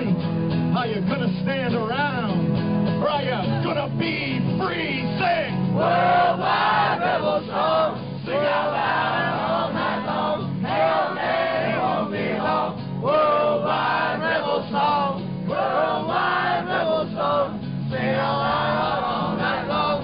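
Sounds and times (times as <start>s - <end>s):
strummed acoustic guitar: 0.0s - 20.0s
man singing: 3.4s - 5.6s, 16.1s - 20.0s
crowd singing along: 5.6s - 20.0s.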